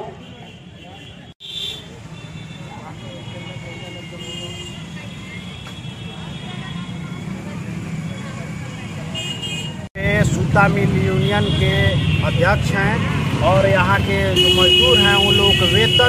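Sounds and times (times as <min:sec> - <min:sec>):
traffic rumble: 0:00.0 - 0:16.0.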